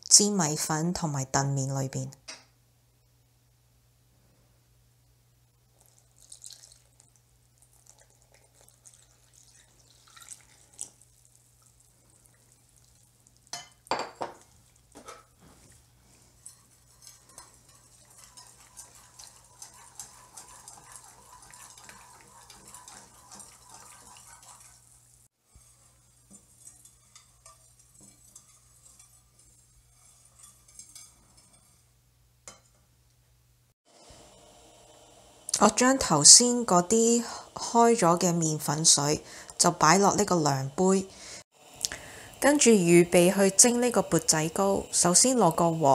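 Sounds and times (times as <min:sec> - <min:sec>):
whisk stirring batter in bowl: 0:07.6 - 0:31.9
whisk clinking against bowl: 0:13.5 - 0:14.4, 0:16.4 - 0:24.9, 0:25.6 - 0:31.8.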